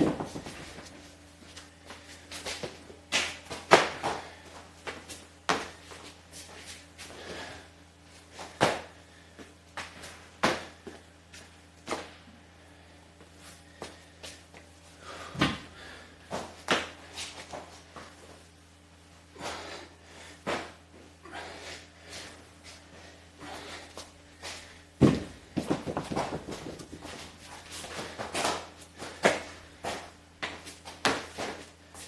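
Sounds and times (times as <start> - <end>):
steady low hum: 0.0 - 32.0
thuds on concrete floor: 15.3 - 15.7, 25.0 - 27.2
footsteps on concrete: 23.9 - 32.0.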